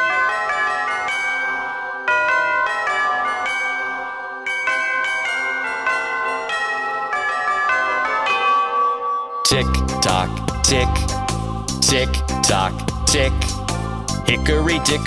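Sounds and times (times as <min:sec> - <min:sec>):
bell chimes melody: 0:00.0 - 0:15.0.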